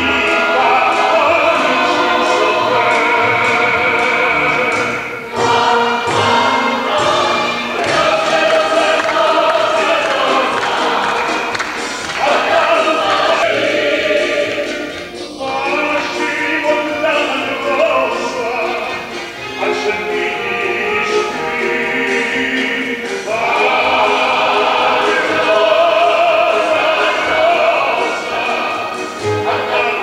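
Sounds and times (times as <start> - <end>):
male soloist singing: 0.0 - 5.2, 6.8 - 11.4, 12.2 - 13.7, 15.3 - 30.0
mixed choir singing folk song: 0.0 - 30.0.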